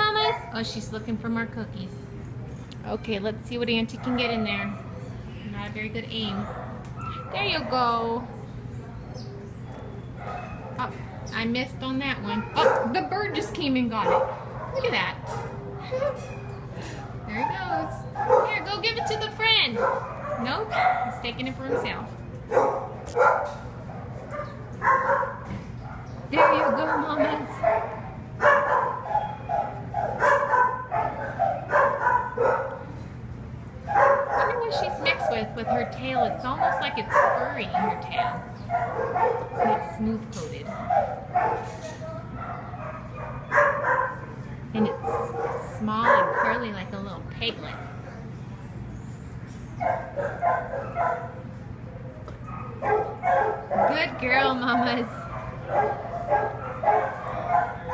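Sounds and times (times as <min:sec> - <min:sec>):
dog barking: 0:06.3 - 0:07.9, 0:09.7 - 0:11.0, 0:12.3 - 0:16.2, 0:16.8 - 0:33.0, 0:33.8 - 0:39.9, 0:40.7 - 0:46.7, 0:49.8 - 0:51.5, 0:52.4 - 0:54.2, 0:55.2 - 0:57.9.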